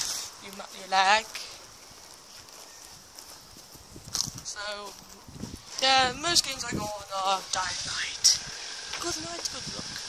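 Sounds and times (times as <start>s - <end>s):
faint footsteps on pavement: 0.0s - 10.0s
outdoor background hiss: 0.0s - 10.0s.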